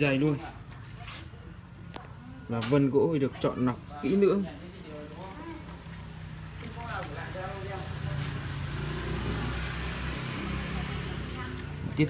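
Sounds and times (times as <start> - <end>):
vehicle engine running: 4.9 - 12.0.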